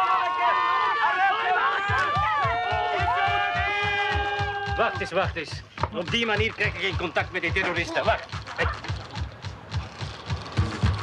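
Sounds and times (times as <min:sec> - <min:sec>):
low music beat: 0:01.8 - 0:11.0.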